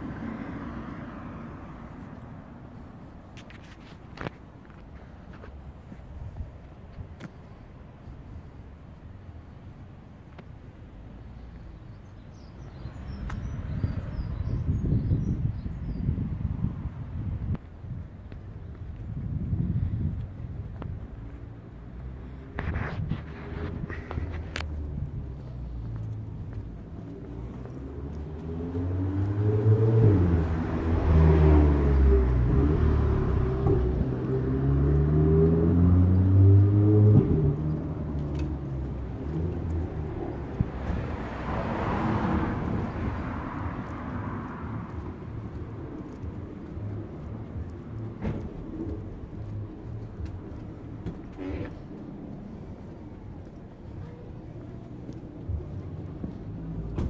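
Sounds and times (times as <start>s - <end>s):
vehicle passing with road noise: 0.0s - 57.0s
car engine accelerating: 22.0s - 57.0s.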